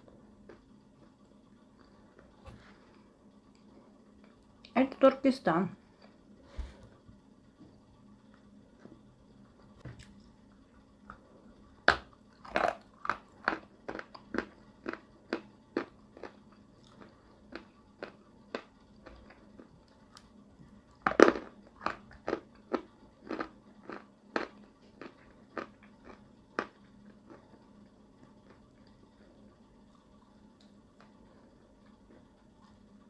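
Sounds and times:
crunching chews: 12.4 - 20.3, 20.9 - 27.7.

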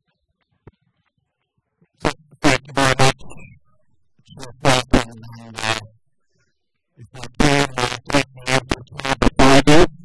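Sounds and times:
man speaking into a microphone: 2.0 - 3.5, 4.3 - 5.9, 7.0 - 10.0.

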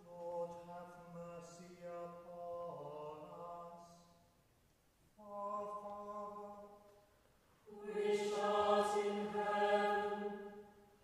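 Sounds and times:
choir chanting held notes: 7.7 - 10.8.

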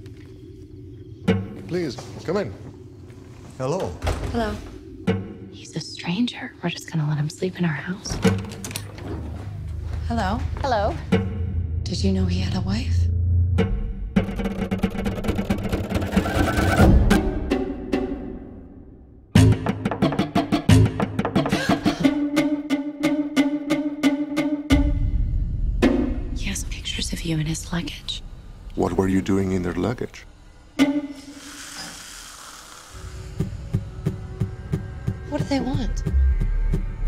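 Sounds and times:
low pulsing thuds: 1.0 - 18.4, 24.7 - 29.6
rapid percussive ticks: 14.2 - 16.8
heavy low hit: 24.7 - 27.4.

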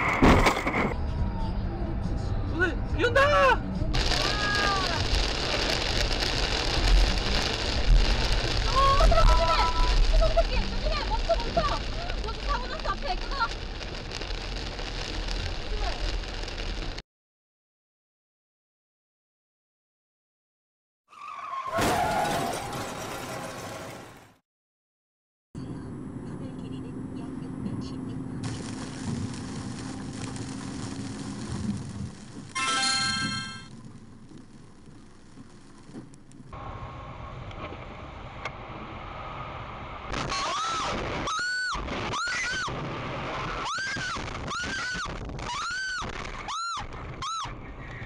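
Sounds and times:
car driving through tunnel: 33.9 - 40.8.

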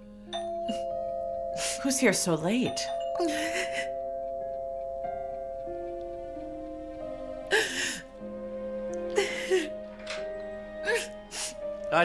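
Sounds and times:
two-tone doorbell chime: 0.3 - 7.6.

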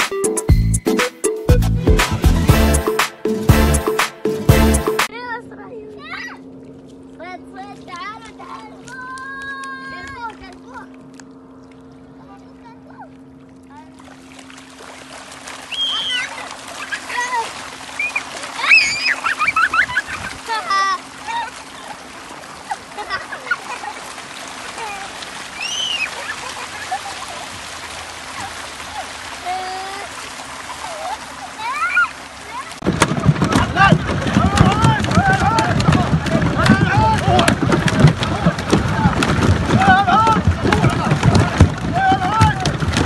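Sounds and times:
fish splashing in shallow water: 6.5 - 43.0
loud voices: 32.7 - 43.0.

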